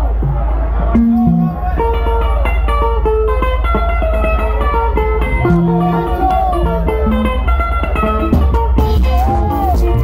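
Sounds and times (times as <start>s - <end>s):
bass line: 0.0s - 10.0s
electric lead guitar run: 0.9s - 9.0s.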